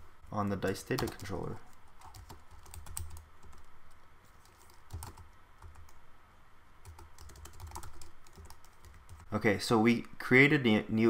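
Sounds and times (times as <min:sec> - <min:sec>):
keyboard typing: 0:00.6 - 0:06.0, 0:06.8 - 0:09.3.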